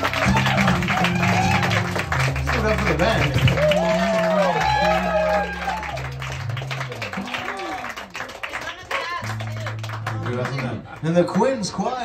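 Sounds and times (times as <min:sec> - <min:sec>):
live band guitars ringing chords: 0:00.0 - 0:08.3, 0:09.2 - 0:11.0
scattered clapping: 0:00.0 - 0:11.7.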